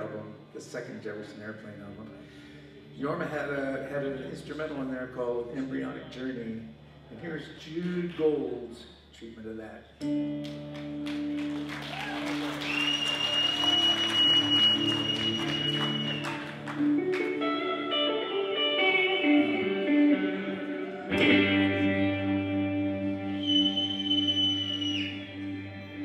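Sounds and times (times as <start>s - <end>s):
electric guitar chords: 10.0s - 26.0s
audience applause: 11.0s - 17.5s.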